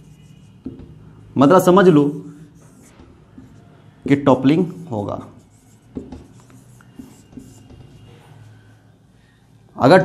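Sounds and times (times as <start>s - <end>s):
marker writing on whiteboard: 0.0s - 9.0s.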